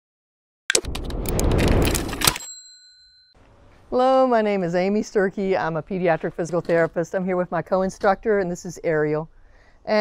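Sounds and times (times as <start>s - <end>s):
crackling clicking noise: 0.7s - 2.4s
bell-like ding: 2.4s - 3.4s.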